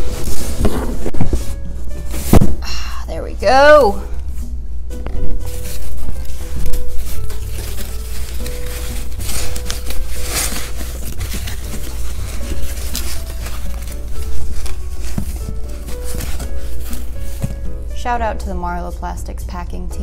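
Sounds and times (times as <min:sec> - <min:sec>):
packing material rustling: 0:00.0 - 0:02.7, 0:05.1 - 0:18.0
background music with held notes: 0:00.0 - 0:20.0.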